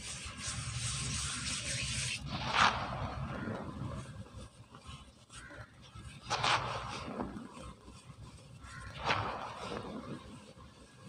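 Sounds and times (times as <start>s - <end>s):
powder rubbed between palms: 0.0s - 11.0s.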